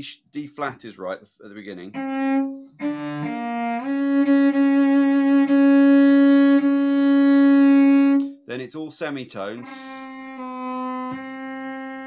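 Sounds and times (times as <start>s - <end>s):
cello bowed slowly: 1.7s - 8.4s, 9.4s - 12.0s.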